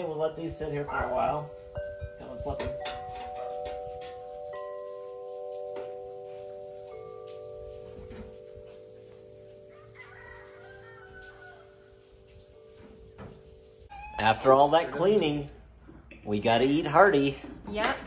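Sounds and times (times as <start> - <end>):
metal wind chimes ringing: 0.0 - 15.5.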